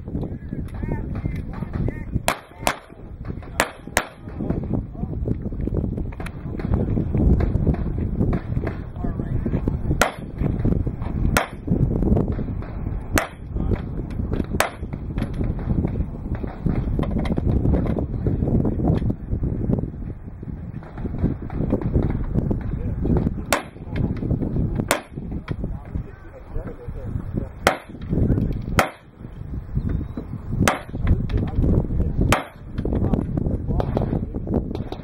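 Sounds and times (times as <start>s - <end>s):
steady low rumble: 0.0s - 35.0s.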